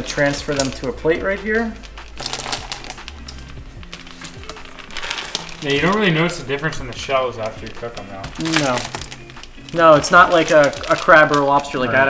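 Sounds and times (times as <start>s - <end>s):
snail shells clicking on a plate: 0.0s - 11.7s
background music with low notes: 0.0s - 12.0s.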